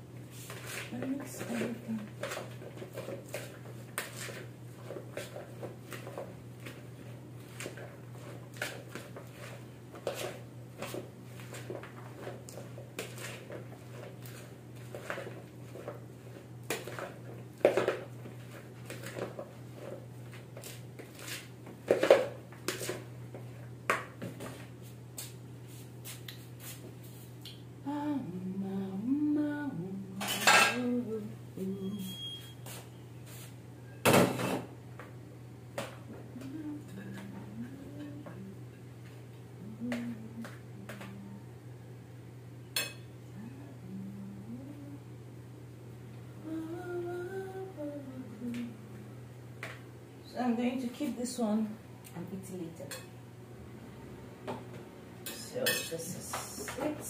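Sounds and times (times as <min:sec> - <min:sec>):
spoon tossing salad in plastic bowl: 0:00.3 - 0:26.8.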